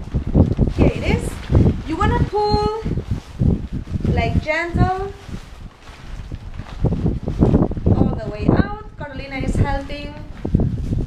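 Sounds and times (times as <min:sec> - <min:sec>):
fabric rustling: 0:00.0 - 0:11.0
wind buffeting microphone: 0:00.0 - 0:11.0.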